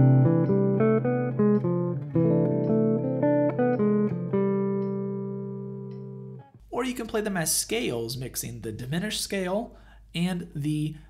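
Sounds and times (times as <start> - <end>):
clean jazz guitar single notes: 0.0 - 6.6.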